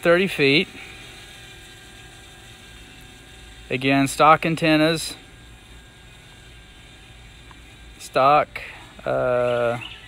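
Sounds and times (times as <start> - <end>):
drone propellers humming: 0.0 - 10.0.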